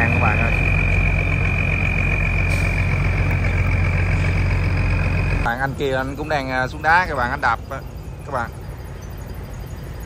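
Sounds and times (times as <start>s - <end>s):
diesel engine drone: 0.0s - 10.0s
high engine whine: 0.0s - 10.0s.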